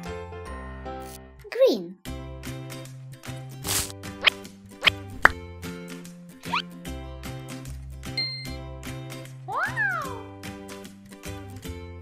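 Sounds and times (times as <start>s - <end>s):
background music: 0.0s - 12.0s
upward-gliding bloop effects: 6.4s - 6.6s.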